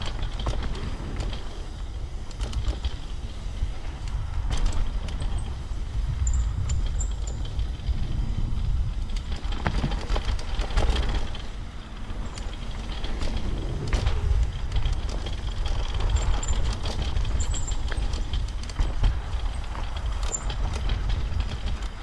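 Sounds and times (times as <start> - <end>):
bike rattling and knocking: 0.0 - 22.0
tyres running over dirt: 0.0 - 22.0
wind buffeting microphone: 0.0 - 22.0.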